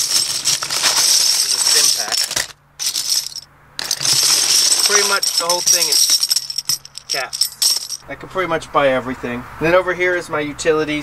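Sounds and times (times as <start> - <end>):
metal bottle caps clinking: 0.0 - 8.0.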